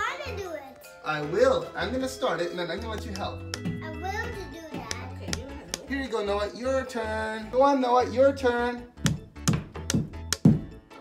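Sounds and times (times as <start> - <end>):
rubber mallet tapping plastic anchor: 9.0 - 10.7.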